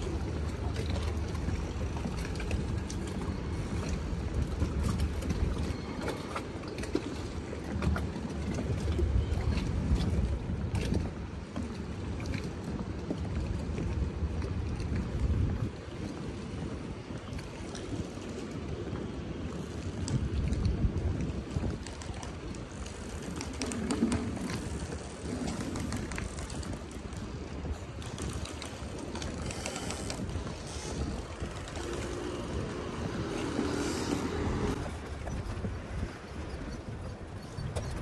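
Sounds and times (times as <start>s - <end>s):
boat engines rumbling: 0.0s - 38.0s
wind buffeting microphone: 0.0s - 38.0s.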